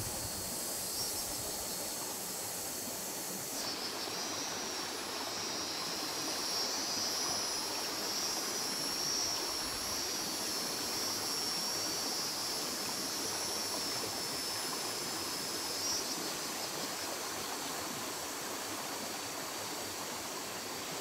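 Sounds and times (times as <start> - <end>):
high-pitched insect drone: 0.0 - 21.0.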